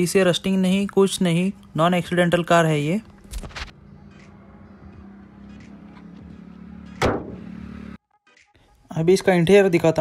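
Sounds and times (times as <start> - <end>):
car bonnet slamming shut: 7.0 - 7.5.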